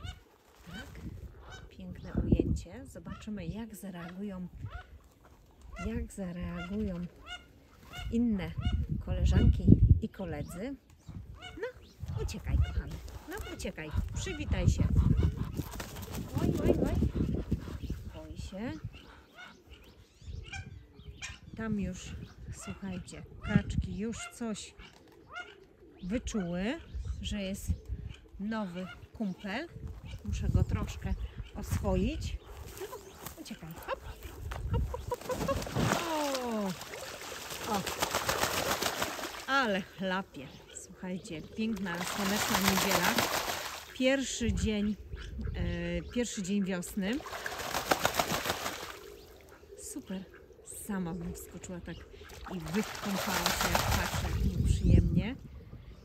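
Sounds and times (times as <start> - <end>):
duck splashing in water: 13.4 - 17.4, 35.0 - 39.8, 41.7 - 44.0, 47.0 - 49.6, 52.2 - 54.6.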